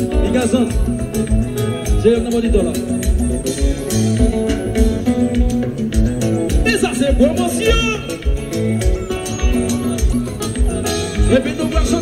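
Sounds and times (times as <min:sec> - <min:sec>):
live band playing: 0:00.0 - 0:12.0
voice on microphone: 0:06.6 - 0:08.3, 0:11.2 - 0:12.0.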